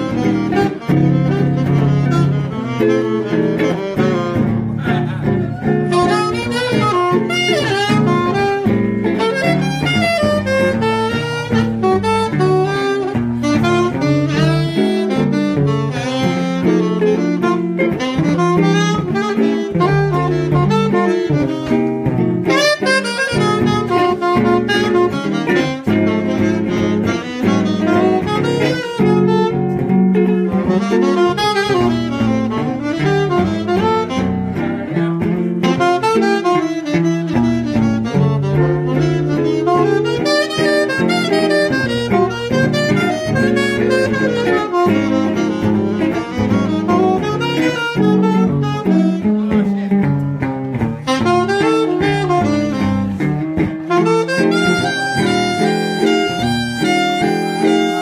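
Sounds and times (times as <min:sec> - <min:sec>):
double bass line: 0:00.0 - 0:58.0
saxophone playing quick phrases: 0:00.0 - 0:58.0.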